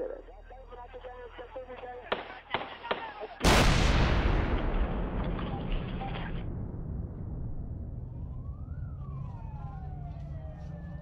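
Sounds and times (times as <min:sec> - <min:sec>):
loud explosion with rumbling tail: 0:03.4 - 0:08.9.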